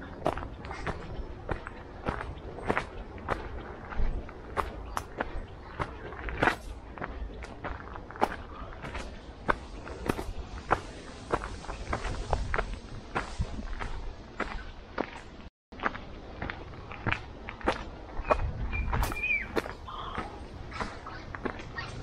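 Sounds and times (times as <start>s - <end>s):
footsteps on gravel and leaves: 0.0s - 22.0s.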